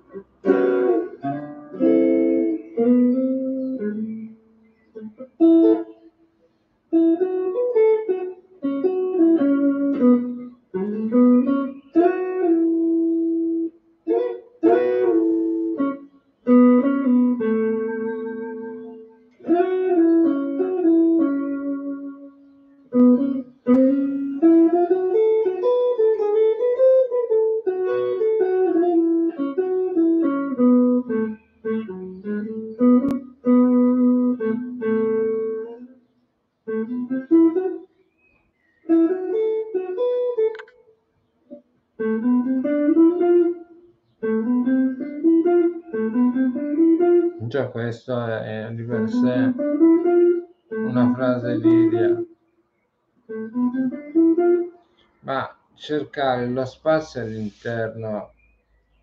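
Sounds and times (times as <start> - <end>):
clean electric guitar melody: 0.0 - 52.4, 53.2 - 55.5.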